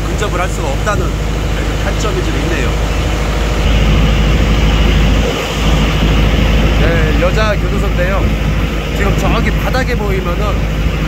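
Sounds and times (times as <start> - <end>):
boat engine droning: 0.0 - 11.0
rushing noise: 0.0 - 11.0.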